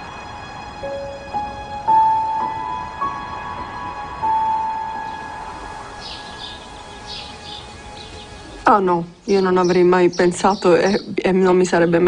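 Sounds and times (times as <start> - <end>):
piano note: 0.0 - 8.7
background hiss: 0.0 - 12.0
bird chirps: 4.3 - 8.6, 9.3 - 11.2.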